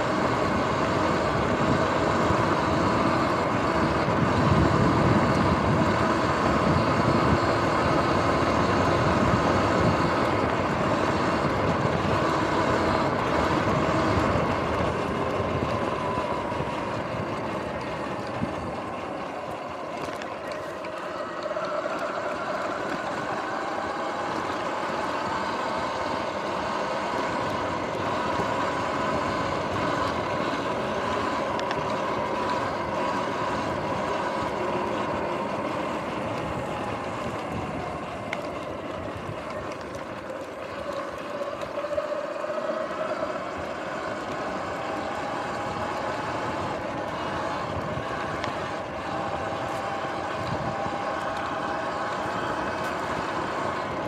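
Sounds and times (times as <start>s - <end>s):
electric motor whine: 0.0s - 54.0s
tyres rumbling on dirt: 0.0s - 54.0s.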